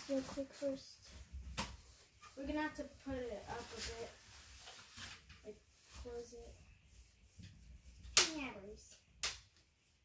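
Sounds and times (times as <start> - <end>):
soft rustles: 0.0 - 8.2.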